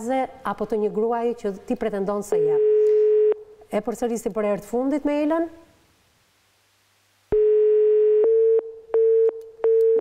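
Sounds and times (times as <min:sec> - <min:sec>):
telephone busy signal: 0:02.6 - 0:03.4, 0:07.3 - 0:10.0.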